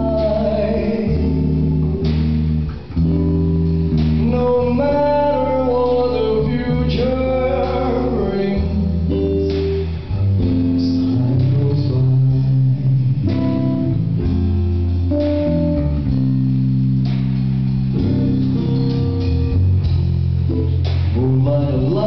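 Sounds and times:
bass line: 0:00.0 - 0:22.0
guitar: 0:00.0 - 0:22.0.

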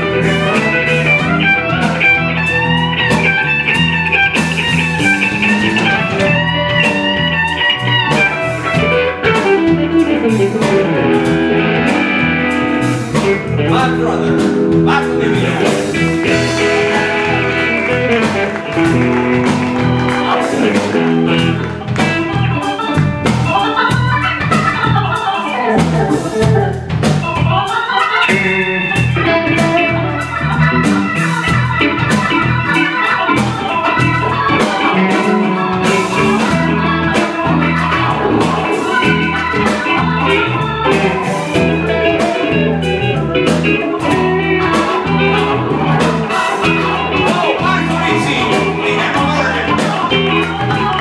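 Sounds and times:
drum kit: 0:00.0 - 0:51.0
electric guitars: 0:00.0 - 0:51.0
keyboard: 0:00.0 - 0:51.0
live blues band playing: 0:00.0 - 0:51.0
walking bass line: 0:00.0 - 0:51.0.

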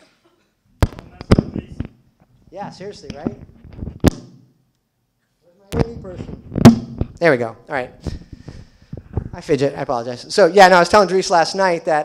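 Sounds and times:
person speaking: 0:00.8 - 0:03.6, 0:05.4 - 0:12.0
knock on microphone: 0:05.8 - 0:07.2.

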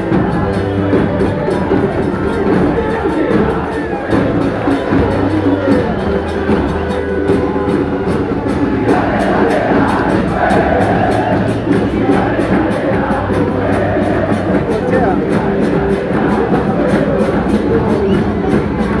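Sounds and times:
bass drums: 0:00.0 - 0:19.0
crowd chanting: 0:00.0 - 0:19.0.

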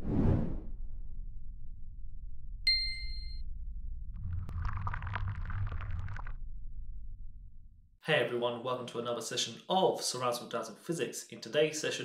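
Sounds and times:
low steady rumble: 0:00.8 - 0:08.0
bright ding: 0:02.7 - 0:03.4.

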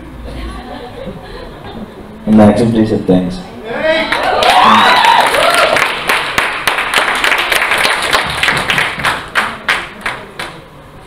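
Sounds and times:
voices cheering: 0:03.7 - 0:06.0
audience applauding: 0:04.0 - 0:10.7.

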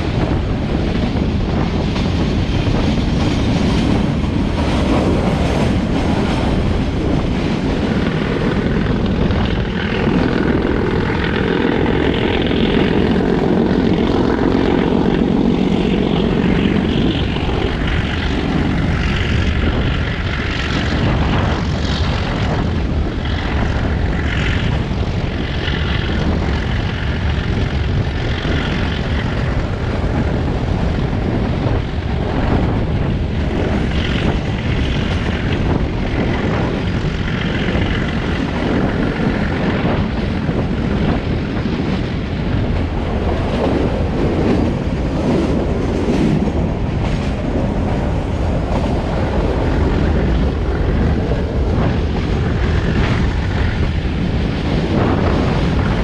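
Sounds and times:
diesel locomotive droning: 0:00.0 - 0:56.0
rushing wind: 0:00.0 - 0:56.0
train wheels rumbling on rail: 0:00.0 - 0:56.0.

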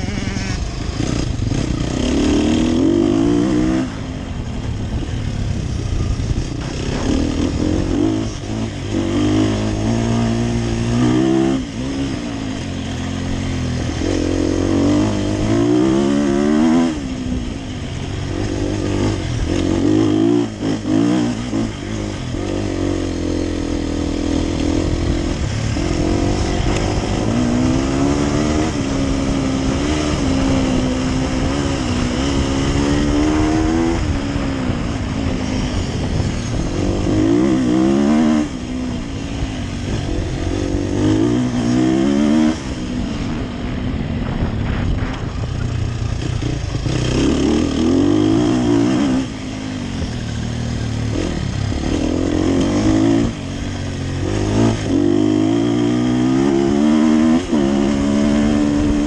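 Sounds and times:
enduro motorcycle engine revving: 0:00.0 - 0:59.0.

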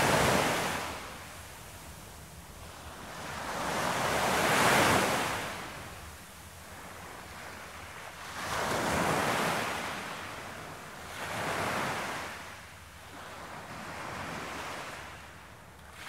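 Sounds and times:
waves breaking and washing in: 0:00.0 - 0:16.0.

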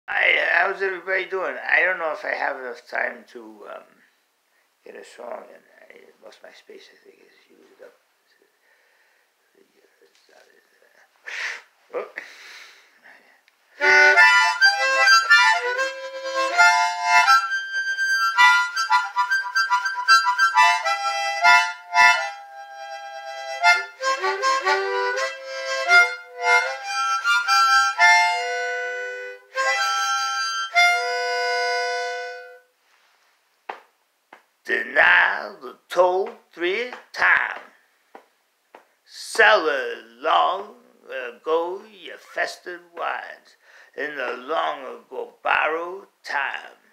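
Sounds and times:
harmonica tune: 0:13.8 - 0:32.8.

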